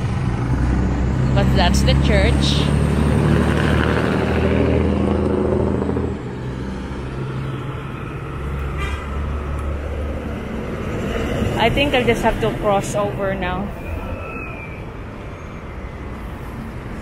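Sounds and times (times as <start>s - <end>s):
road traffic noise: 0.0s - 17.0s
truck engine passing: 0.0s - 17.0s.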